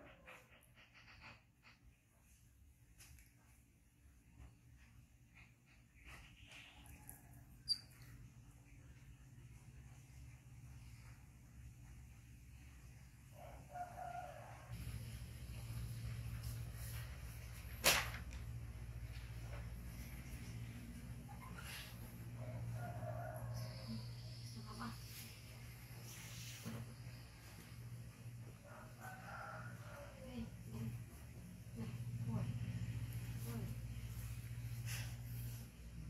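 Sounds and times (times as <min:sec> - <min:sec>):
rooster crowing: 0:13.4 - 0:14.8, 0:22.4 - 0:24.3, 0:28.6 - 0:30.5.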